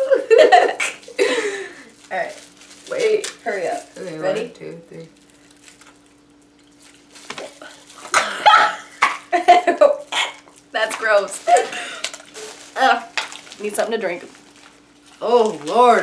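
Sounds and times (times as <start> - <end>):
women laughing: 0.0 - 1.8, 8.2 - 10.4, 11.4 - 12.1
faint steady hum: 0.0 - 16.0.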